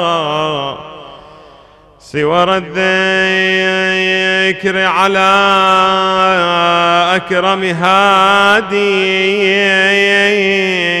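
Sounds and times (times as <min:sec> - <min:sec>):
man chanting solo: 0:00.0 - 0:01.3, 0:02.0 - 0:11.0.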